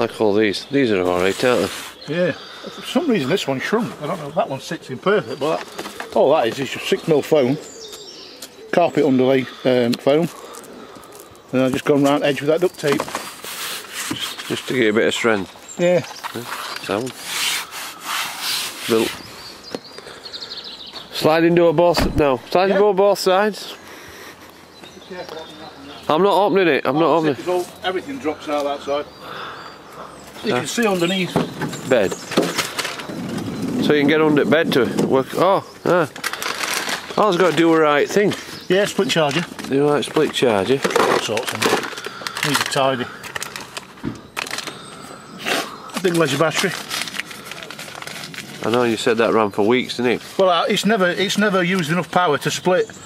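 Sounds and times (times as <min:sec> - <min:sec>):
bird singing: 0:00.0 - 0:53.0
outdoor background noise: 0:00.0 - 0:53.0
dull low thump: 0:21.9 - 0:22.5.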